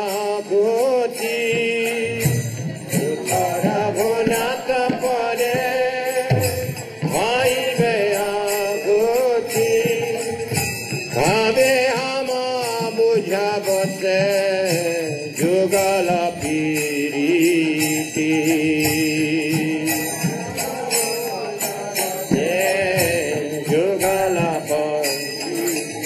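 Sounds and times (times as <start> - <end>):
person singing a chant: 0.0 - 26.0.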